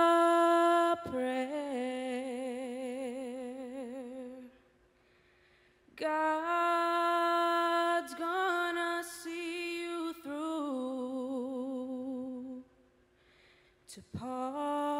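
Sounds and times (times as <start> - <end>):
woman singing a lullaby: 0.0 - 4.5, 6.0 - 12.6, 13.9 - 14.9.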